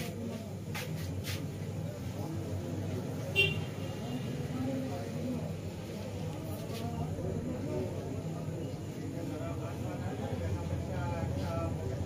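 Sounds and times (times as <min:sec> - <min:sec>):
background traffic: 0:00.0 - 0:12.0.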